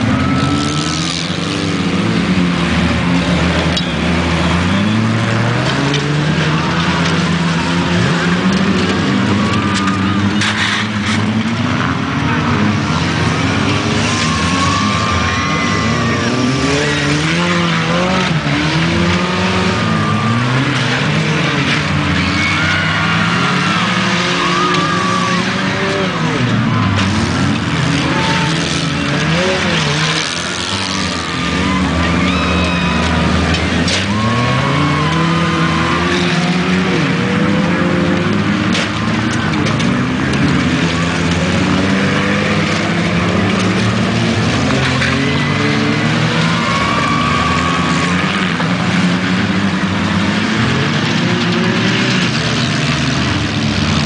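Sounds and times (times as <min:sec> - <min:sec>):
racing car engines revving: 0:00.0 - 0:54.0.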